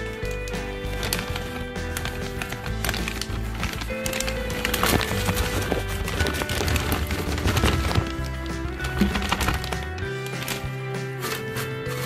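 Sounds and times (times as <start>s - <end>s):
background music: 0.0s - 12.0s
chips rattling into plastic container: 0.0s - 12.0s
plastic bag crinkling: 0.0s - 12.0s.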